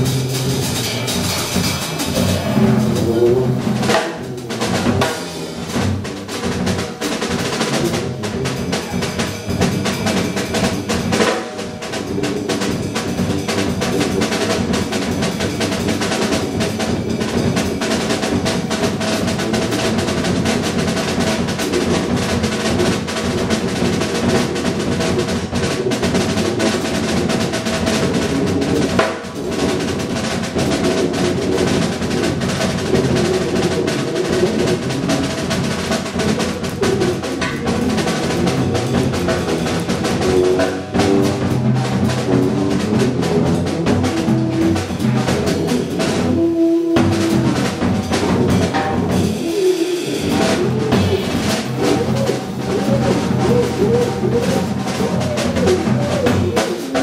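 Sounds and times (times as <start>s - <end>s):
held low notes: 0.0s - 11.2s, 30.6s - 56.9s
drum and percussion rolls: 0.0s - 57.0s
free jazz ensemble: 0.0s - 57.0s.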